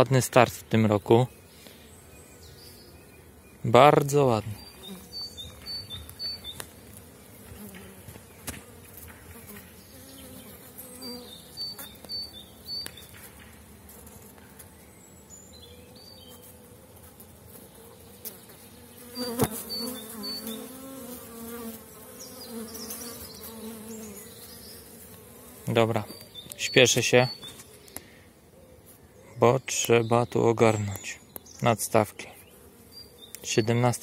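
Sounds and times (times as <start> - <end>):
bees buzzing: 1.0 - 28.3.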